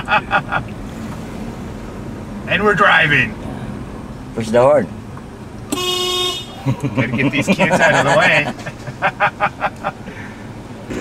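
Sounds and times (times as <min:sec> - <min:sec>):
car engine hum: 0:00.0 - 0:11.0
car horn: 0:05.7 - 0:06.7.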